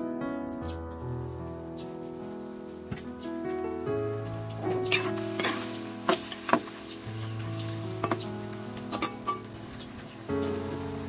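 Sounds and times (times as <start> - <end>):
metal ladle stirring in a wok: 4.9 - 8.2, 8.9 - 9.5.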